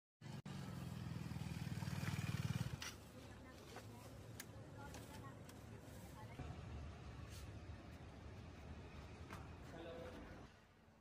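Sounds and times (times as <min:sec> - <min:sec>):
motorcycle engine running: 0:00.2 - 0:03.1.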